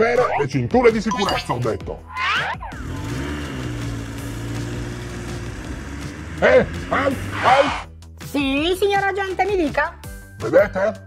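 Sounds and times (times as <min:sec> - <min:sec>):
car engine hum: 0:02.7 - 0:07.8.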